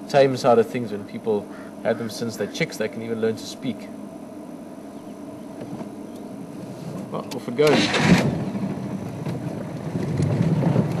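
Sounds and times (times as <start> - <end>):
vehicle engine running: 5.4 - 11.0.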